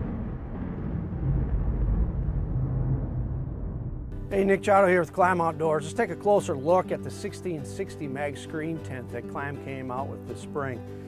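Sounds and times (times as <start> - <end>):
deep low rumble: 0.0 - 4.4.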